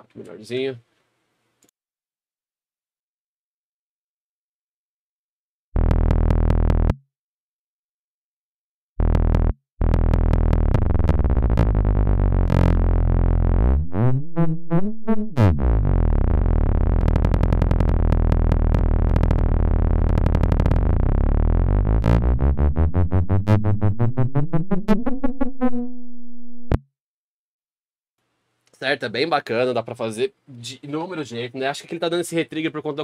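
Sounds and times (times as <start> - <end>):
rapid rising synth retriggers: 9.9 - 26.0
warping low synth drone: 9.9 - 26.0.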